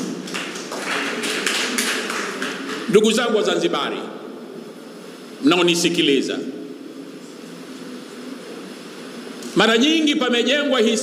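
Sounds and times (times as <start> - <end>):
audience applause: 0.0 - 2.9.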